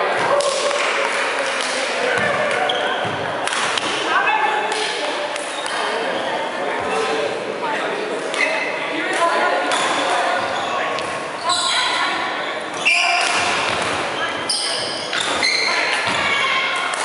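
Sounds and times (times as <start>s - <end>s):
rackets hitting shuttlecock: 1.4s - 4.1s, 13.1s - 14.0s.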